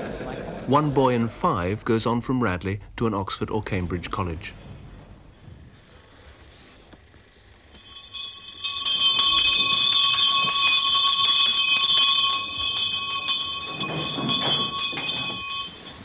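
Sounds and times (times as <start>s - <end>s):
electric bell ringing: 7.6s - 16.0s.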